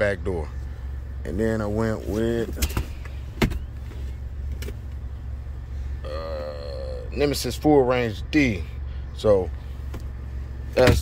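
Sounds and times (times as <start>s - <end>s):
low hum inside truck cab: 0.0s - 11.0s.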